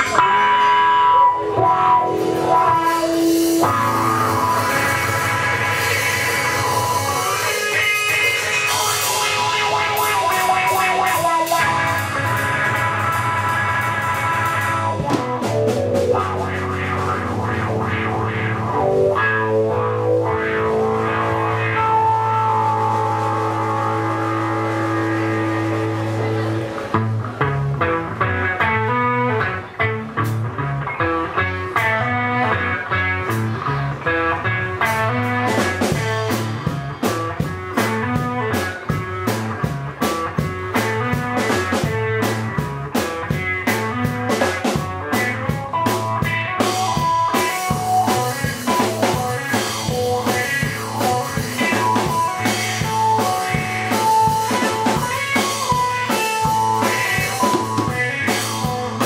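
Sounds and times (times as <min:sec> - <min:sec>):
drum kit: 0:00.0 - 0:59.0
electric guitar riffs: 0:00.0 - 0:59.0.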